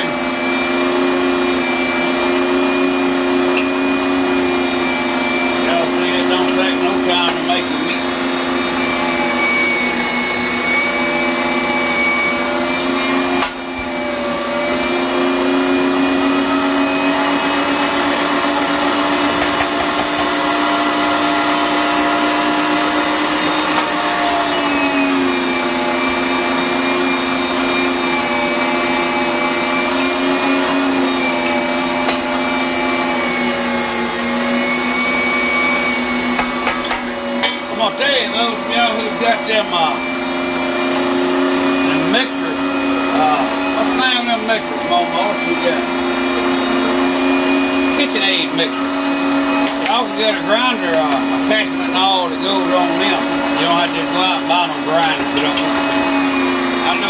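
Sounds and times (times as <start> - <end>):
electric meat grinder running: 0.0 - 57.0.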